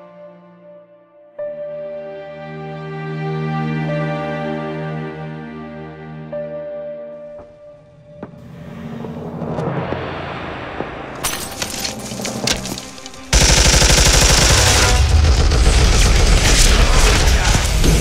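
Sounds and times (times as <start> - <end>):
music: 0.0 - 18.0
submachine gun fire: 13.3 - 18.0.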